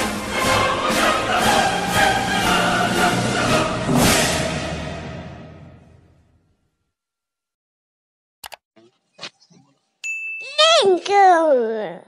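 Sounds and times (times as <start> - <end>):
notification bell ding: 10.0 - 10.6.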